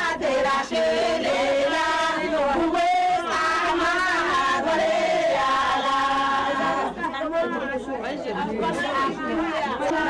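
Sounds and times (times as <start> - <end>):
group singing long held notes: 0.0 - 7.1, 8.6 - 10.0
overlapping chatter: 0.0 - 10.0.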